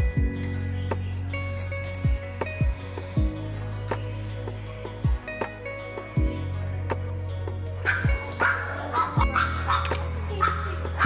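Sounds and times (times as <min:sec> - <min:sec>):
background music with steady beat: 0:00.0 - 0:11.0
small dog barking: 0:07.9 - 0:11.0.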